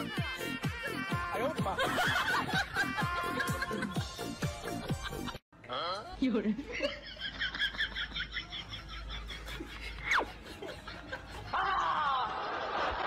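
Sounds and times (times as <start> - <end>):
woman laughing: 1.6 - 5.4, 6.4 - 13.0.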